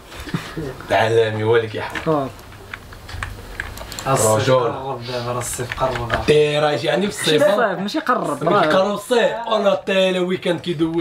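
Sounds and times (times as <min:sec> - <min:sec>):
computer keyboard clicks: 0:02.0 - 0:04.1, 0:05.5 - 0:06.2.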